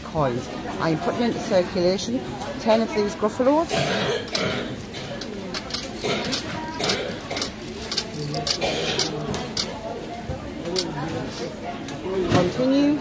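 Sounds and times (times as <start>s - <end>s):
coins clinking into machine tray: 5.2s - 9.8s.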